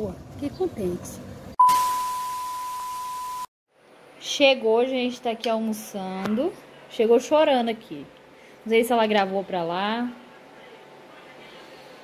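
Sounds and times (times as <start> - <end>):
test-tone beep: 1.6 - 3.5.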